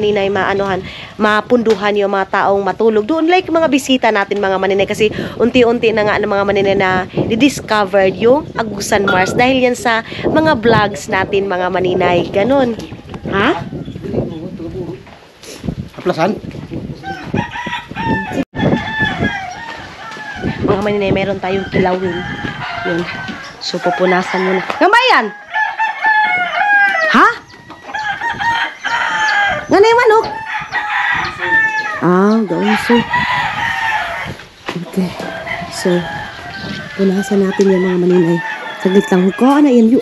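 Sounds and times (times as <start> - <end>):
rooster crowing: 17.0 - 20.8, 21.5 - 40.0.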